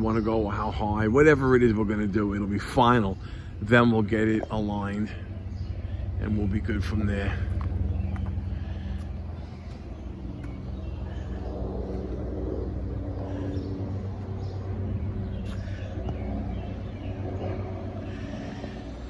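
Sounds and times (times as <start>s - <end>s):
low motor hum: 0.0s - 19.0s.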